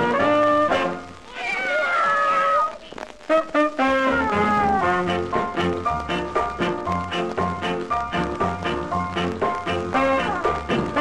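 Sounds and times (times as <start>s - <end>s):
ska horn band: 0.0s - 1.1s, 3.2s - 11.0s
drawn-out cat meow: 1.2s - 3.0s.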